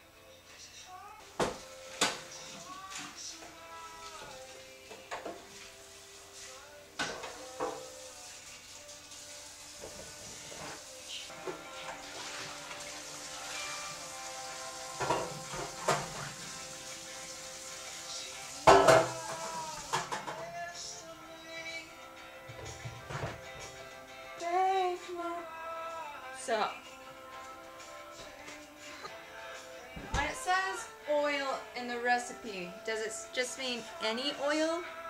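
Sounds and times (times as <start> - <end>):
metal pans clattering: 7.0 - 7.9, 15.0 - 16.4, 18.7 - 20.5, 22.5 - 23.4.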